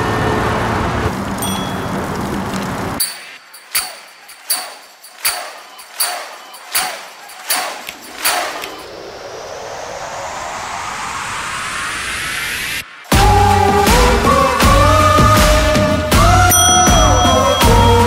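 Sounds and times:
sharp metallic clicks: 3.0s - 9.0s
whoosh rising in pitch: 7.0s - 14.7s.

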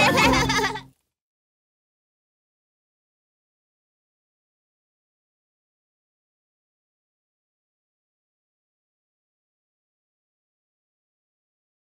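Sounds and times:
theme music: 0.0s - 0.8s
bleat-like vocal giggle: 0.0s - 0.9s.

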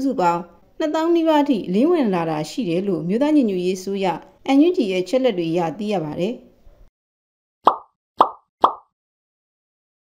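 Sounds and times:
pop sound effects: 7.6s - 9.0s.

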